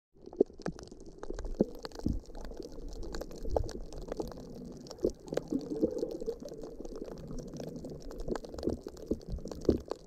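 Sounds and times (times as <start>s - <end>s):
underwater gurgling rumble: 0.2s - 10.0s
underwater clicks and pops: 0.3s - 10.0s.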